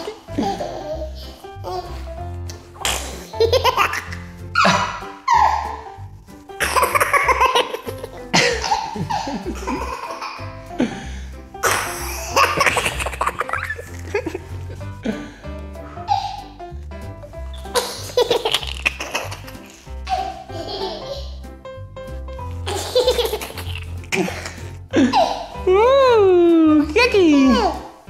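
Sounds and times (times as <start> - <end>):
toddler laughing: 0.0 - 2.0, 3.2 - 5.9, 6.6 - 10.5, 11.6 - 14.4, 17.7 - 21.4, 22.6 - 25.6
background music with bass line: 0.0 - 28.0.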